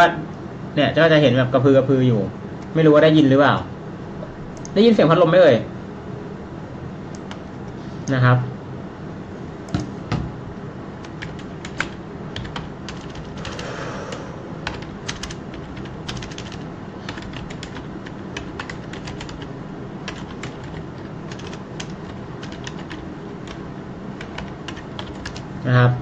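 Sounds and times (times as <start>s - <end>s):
electric fan humming: 0.0s - 26.0s
typing on computer keyboard: 11.0s - 13.7s, 14.6s - 23.6s, 24.2s - 25.5s.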